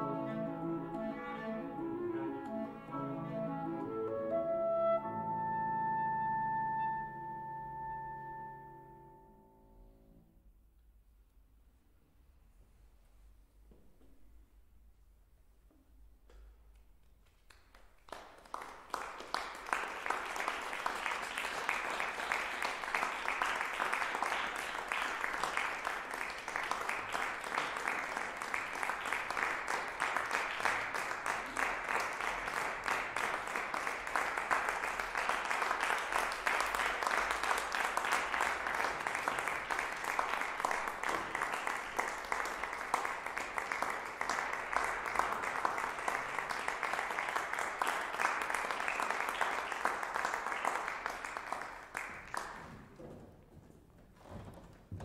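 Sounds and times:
audience applauding: 17.4 - 52.7.

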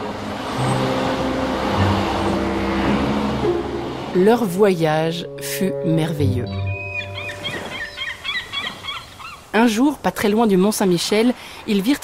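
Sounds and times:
vehicle drive-by rushing: 0.0 - 4.2
soft background music: 0.0 - 8.2.

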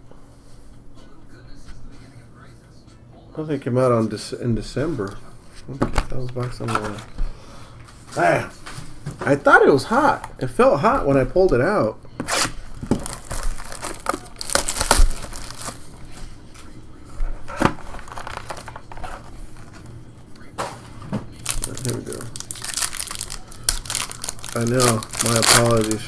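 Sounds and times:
foil pack tearing: 12.2 - 16.0, 17.6 - 19.3, 21.4 - 26.0
cardboard and foil crinkling: 12.2 - 16.3, 17.4 - 19.9, 21.3 - 26.0.

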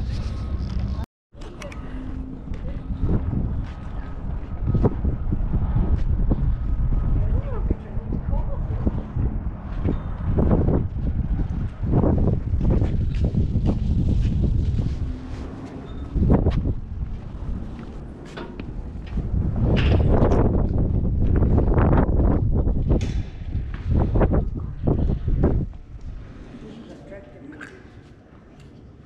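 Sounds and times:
wind buffeting microphone: 0.0 - 27.4.

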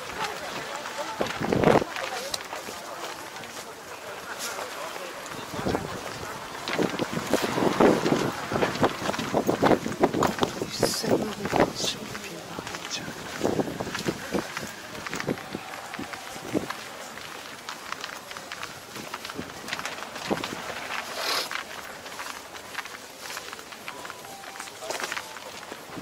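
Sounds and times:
people talking indistinctly: 0.0 - 25.8
wind on microphone: 1.2 - 1.9, 5.3 - 17.3.

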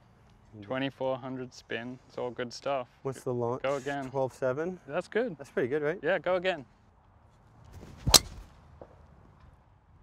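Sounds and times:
golf club swish: 7.8 - 8.5
golf club cracking ball: 8.0 - 8.4.

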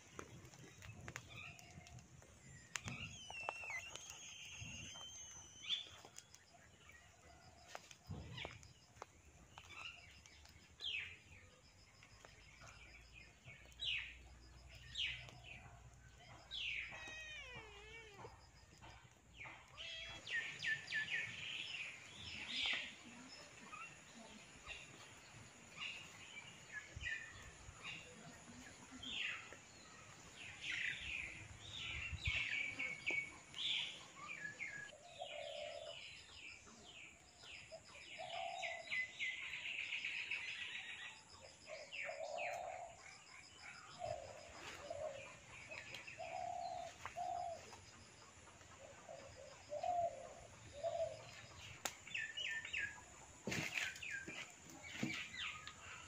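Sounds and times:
birds chirping: 0.0 - 56.0.

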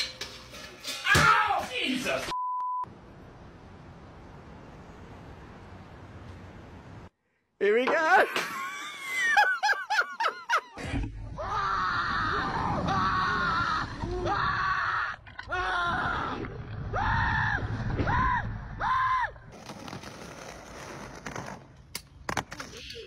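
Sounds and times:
young man screaming: 1.0 - 1.9.

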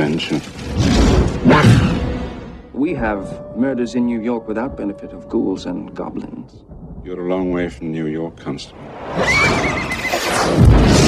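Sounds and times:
horse whinnying: 9.2 - 10.5.

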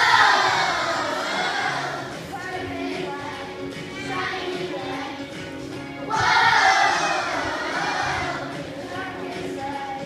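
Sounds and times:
children shouting together: 0.0 - 2.0, 6.1 - 8.5.

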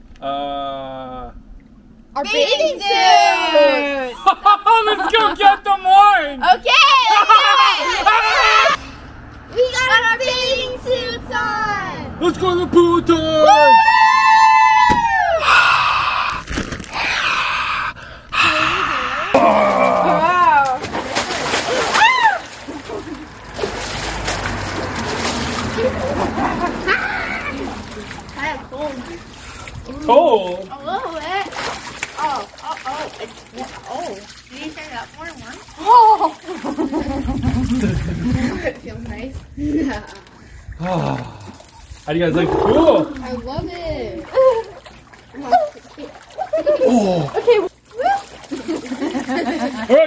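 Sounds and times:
people yelling: 5.8 - 8.8, 12.6 - 16.3, 17.7 - 21.0, 21.7 - 22.7
people whooping: 13.4 - 16.4, 21.7 - 22.8
person screaming harshly: 13.5 - 16.4, 17.0 - 20.6
wordless voices: 17.0 - 21.0, 25.8 - 50.0
water splashed by hand: 19.4 - 38.5, 40.0 - 49.9.

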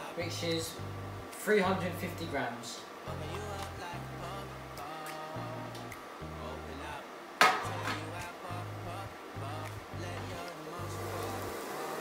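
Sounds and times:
background music with bass line: 0.2 - 2.4, 3.1 - 11.6.

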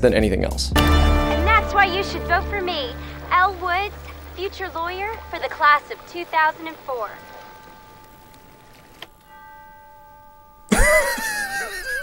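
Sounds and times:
soft sustained chord: 0.8 - 10.7
man laughing loudly: 10.7 - 12.0.

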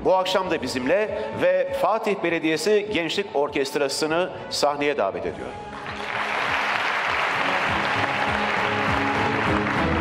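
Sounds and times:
music playing: 0.0 - 10.0
audience applauding: 5.8 - 10.0.

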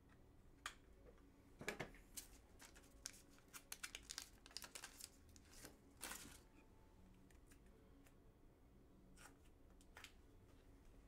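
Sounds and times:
plastic packaging crinkling: 2.6 - 6.5.

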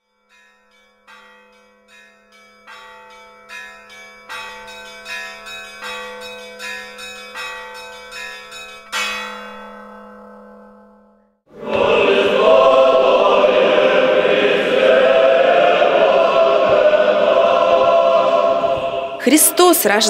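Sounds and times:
bells struck: 0.3 - 11.2.

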